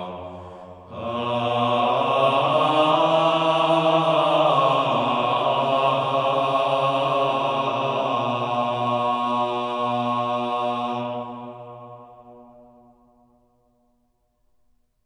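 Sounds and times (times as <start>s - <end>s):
male choir singing sustained notes: 0.0s - 13.5s.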